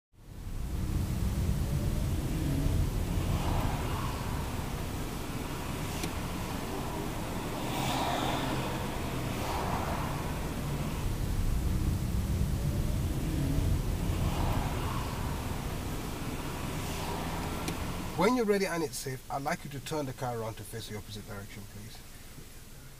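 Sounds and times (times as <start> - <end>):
car engine and road noise: 0.1 - 22.9.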